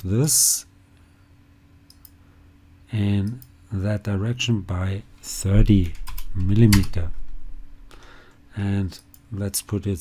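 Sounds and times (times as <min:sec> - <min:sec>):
low steady hum: 0:00.0 - 0:10.0
computer mouse clicks: 0:01.8 - 0:02.2.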